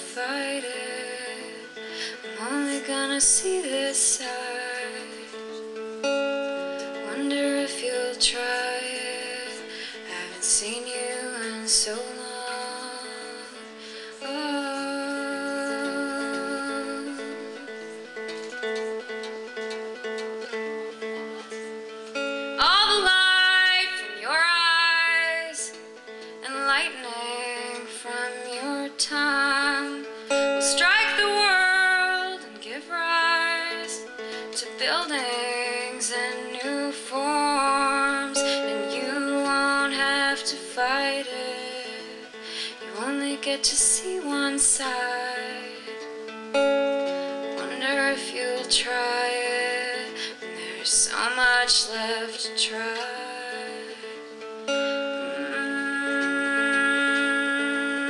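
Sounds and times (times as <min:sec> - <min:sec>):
woman singing: 0:00.0 - 0:19.1, 0:20.0 - 0:58.0
acoustic guitar: 0:00.0 - 0:58.0.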